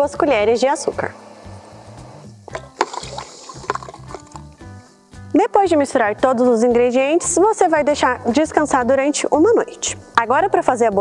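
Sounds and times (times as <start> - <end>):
soft background music: 0.0 - 11.0
spoon clicking against bucket: 2.5 - 4.6
water sloshing in bucket: 2.5 - 4.6.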